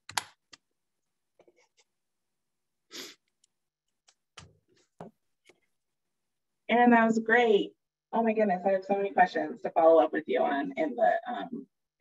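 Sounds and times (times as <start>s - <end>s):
person's breathy burst: 2.9s - 3.2s.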